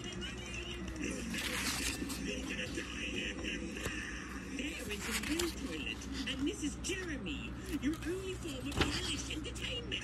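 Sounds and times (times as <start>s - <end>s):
comic book page turning: 0.8s - 2.9s, 4.6s - 6.5s, 7.6s - 9.2s.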